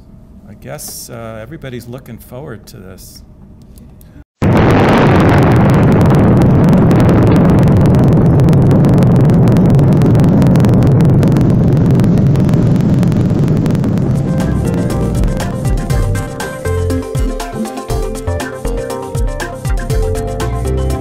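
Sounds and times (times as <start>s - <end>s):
huge explosion with deep rumble: 4.4s - 17.4s.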